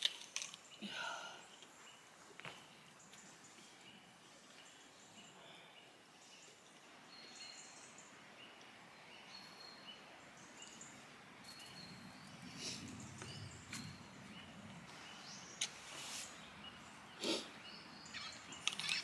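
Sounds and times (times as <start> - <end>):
rustle: 0.0 - 19.0
bird chirps: 1.4 - 19.0.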